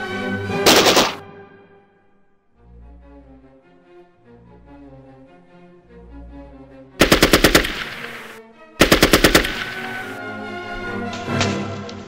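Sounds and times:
background music: 0:00.0 - 0:12.0
automatic gunfire bursts: 0:00.6 - 0:01.2, 0:07.0 - 0:10.2.

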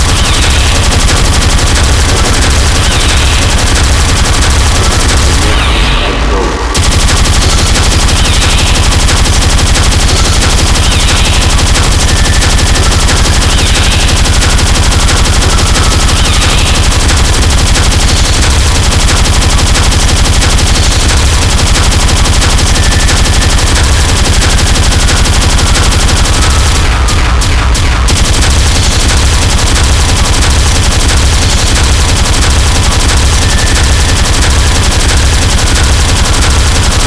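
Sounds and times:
distorted speedcore kick drums: 0:00.0 - 0:37.0.

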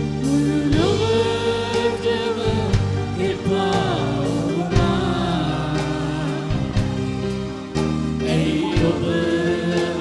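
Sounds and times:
man singing into microphone: 0:00.0 - 0:07.3, 0:08.2 - 0:10.0
instrumental accompaniment with beat: 0:00.0 - 0:10.0.

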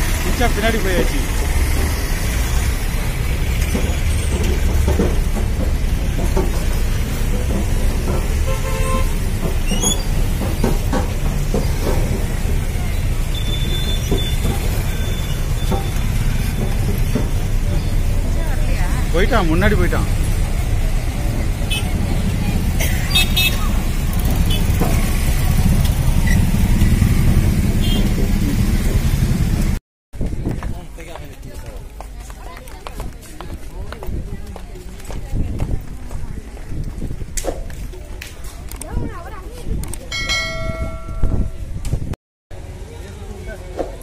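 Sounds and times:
low rumble of vehicle engines: 0:00.0 - 0:44.0
crowd noise: 0:09.2 - 0:27.1
crowd chatter: 0:12.0 - 0:24.7, 0:30.2 - 0:41.9
metal bell ringing: 0:40.1 - 0:41.6.

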